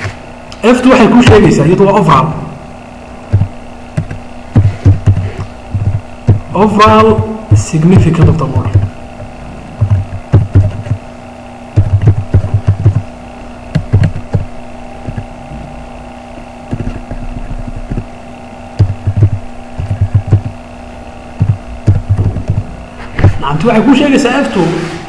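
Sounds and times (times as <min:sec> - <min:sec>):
steady electrical hum: 0:00.0 - 0:25.0
computer keyboard typing: 0:03.3 - 0:06.4, 0:09.8 - 0:11.0, 0:11.8 - 0:13.1, 0:13.8 - 0:15.2, 0:18.8 - 0:20.6, 0:21.4 - 0:22.7.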